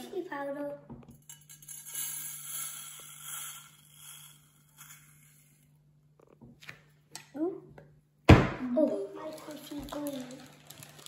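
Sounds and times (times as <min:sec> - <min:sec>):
powder pouring hiss: 0:02.0 - 0:05.7.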